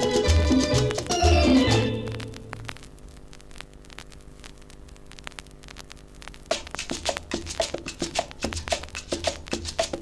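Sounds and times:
music percussion: 0:00.0 - 0:02.1, 0:06.5 - 0:10.0
steady electrical hum: 0:00.0 - 0:10.0
vinyl surface noise clicks: 0:02.0 - 0:10.0.

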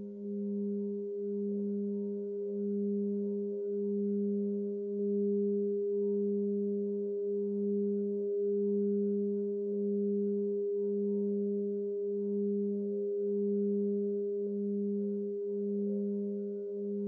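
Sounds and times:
low pulsing tone: 0:00.0 - 0:17.0.

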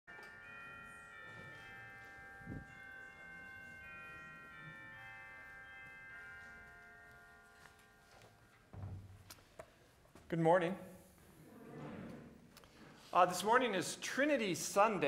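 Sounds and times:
bells chiming: 0:00.1 - 0:08.8.

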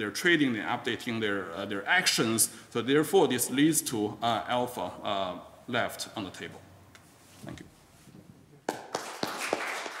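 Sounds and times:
audience applause: 0:08.7 - 0:10.0.

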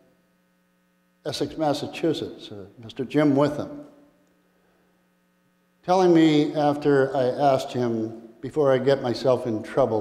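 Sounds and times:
faint electrical hum: 0:00.0 - 0:10.0
man speaking: 0:01.3 - 0:03.9, 0:05.9 - 0:10.0.

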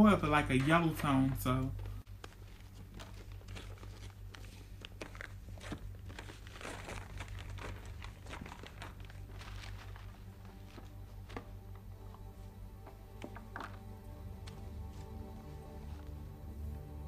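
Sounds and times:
steady low hum: 0:00.0 - 0:17.0
paper tearing and crinkling: 0:02.1 - 0:12.3.

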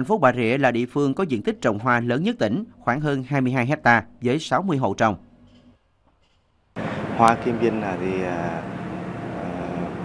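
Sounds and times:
engine hum: 0:06.8 - 0:10.0.

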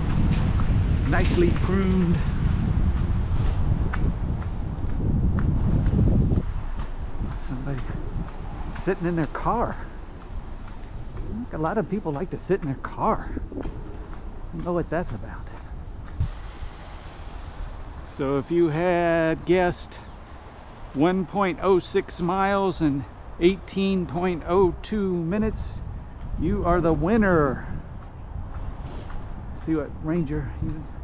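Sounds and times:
footsteps on concrete: 0:00.0 - 0:31.0
wind rumble on microphone: 0:00.0 - 0:31.0.

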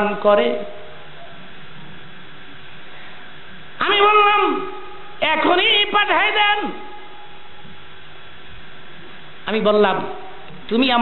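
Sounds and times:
electrical mains hum: 0:00.0 - 0:11.0
sound system hiss: 0:00.0 - 0:11.0.

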